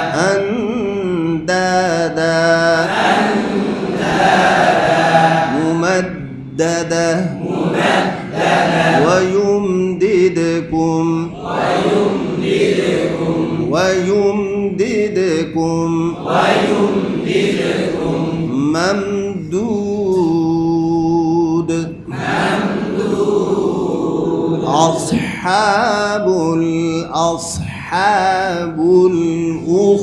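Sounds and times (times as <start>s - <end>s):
man chanting melodic recitation: 0.0s - 2.9s, 5.0s - 7.6s, 8.8s - 12.2s, 13.4s - 17.0s, 18.0s - 22.1s, 24.6s - 30.0s.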